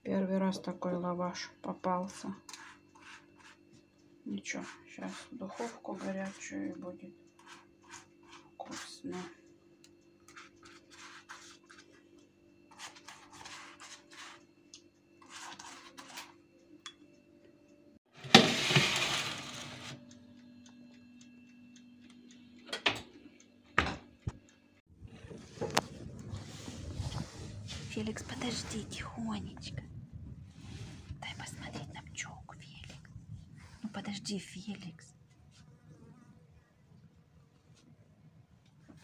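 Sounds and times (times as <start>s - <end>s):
low steady hum: 19.3s - 39.0s
dense rustling noise: 25.0s - 31.6s.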